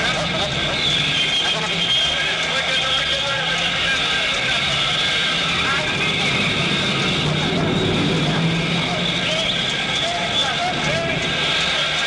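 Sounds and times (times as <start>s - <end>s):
many voices: 0.0s - 12.0s
vehicle engines running: 0.0s - 12.0s.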